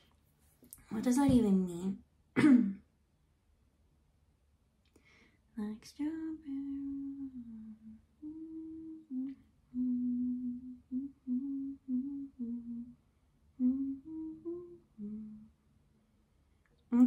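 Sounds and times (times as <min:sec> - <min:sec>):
woman humming a slow tune: 0:05.6 - 0:13.0, 0:13.6 - 0:15.6.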